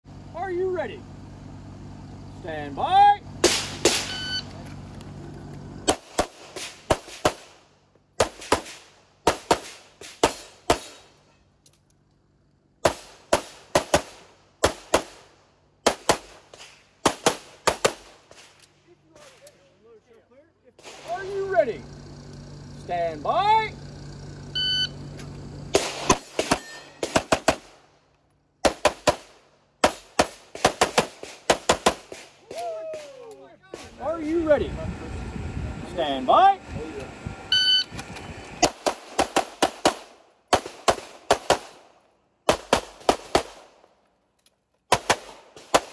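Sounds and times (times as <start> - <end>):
shot timer beep: 4.1 - 4.5, 24.6 - 25.0, 37.5 - 37.9
pistol rapid shots: 5.9 - 7.6, 8.2 - 11.0, 12.8 - 18.5, 25.8 - 27.8, 28.6 - 32.3, 38.6 - 43.8, 44.9 - 45.9.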